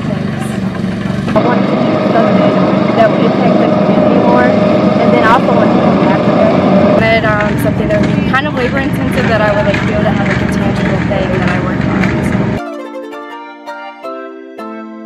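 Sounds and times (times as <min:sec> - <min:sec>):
woman talking: 0:00.0 - 0:00.6, 0:01.4 - 0:12.5
loud steady noise: 0:00.0 - 0:12.6.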